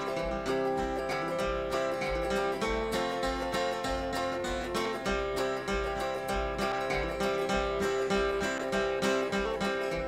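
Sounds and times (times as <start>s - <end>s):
string band playing: 0.0s - 10.0s.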